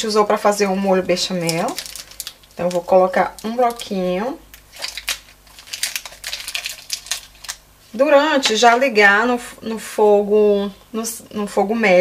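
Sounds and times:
foil wrapper crinkling: 1.2s - 7.7s.

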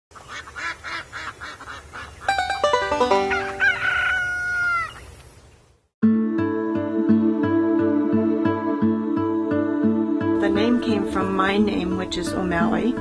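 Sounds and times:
rising run of musical notes: 2.3s - 3.9s
rooster crowing: 3.1s - 5.0s.

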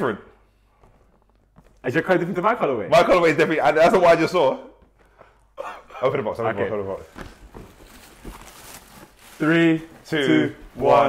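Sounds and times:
tissue paper rustling: 6.6s - 11.0s.

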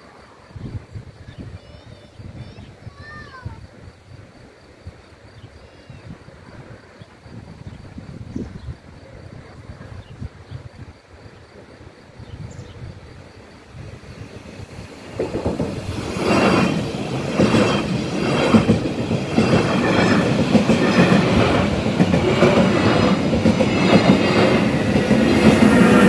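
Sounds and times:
faint chirps: 0.0s - 14.6s
wind buffeting microphone: 0.5s - 26.0s.

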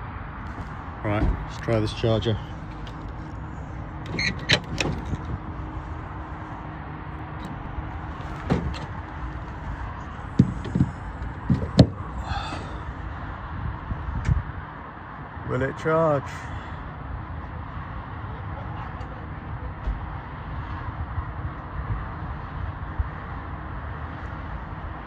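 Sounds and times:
steady low rumble: 0.0s - 14.9s.

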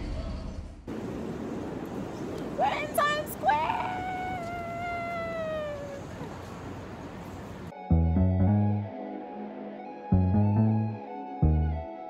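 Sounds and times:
busy city street noise: 0.9s - 7.7s
woman's long held shout: 2.6s - 6.2s.

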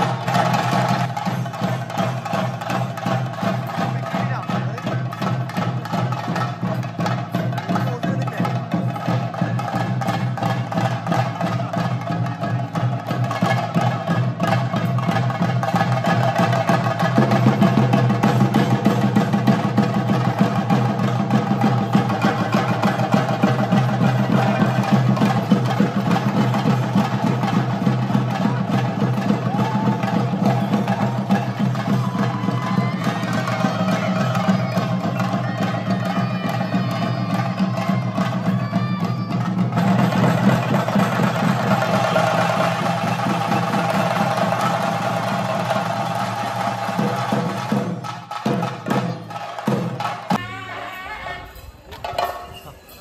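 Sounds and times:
drums beaten with sticks: 0.0s - 53.0s.

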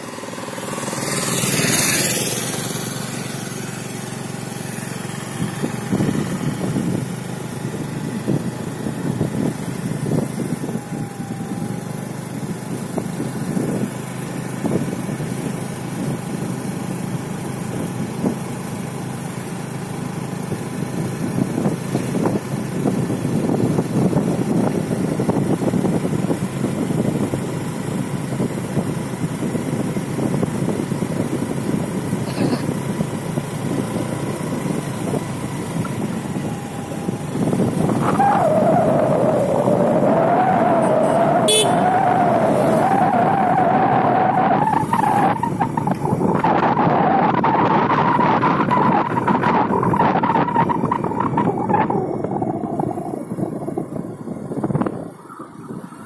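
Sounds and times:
auto-rickshaw passing by: 0.0s - 56.0s
vehicle engine and road noise: 0.0s - 56.0s
wind gusting on microphone: 0.6s - 16.4s, 20.6s - 56.0s.

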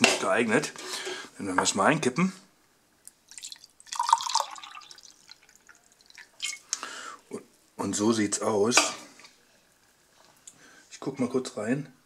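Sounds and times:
tea pouring into glass mug: 3.3s - 6.7s.

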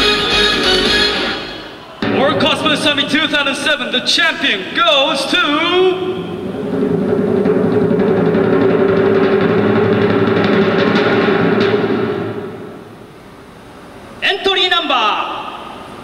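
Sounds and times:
suspense drum roll: 2.0s - 4.0s, 5.8s - 13.1s.

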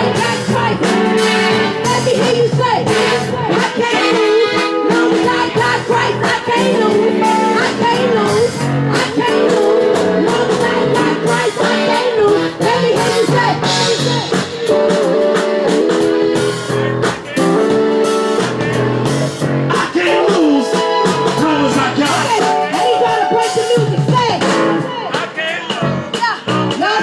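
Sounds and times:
live band music over a pa: 0.0s - 27.0s
steady drum beat: 0.0s - 27.0s.

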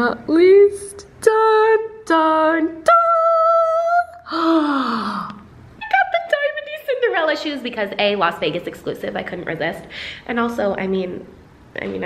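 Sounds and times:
woman's breathy exclamation: 4.2s - 5.4s.

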